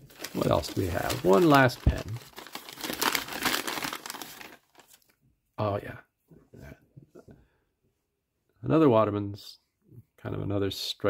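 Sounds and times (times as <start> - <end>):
paper bag crinkling: 0.0 - 5.1.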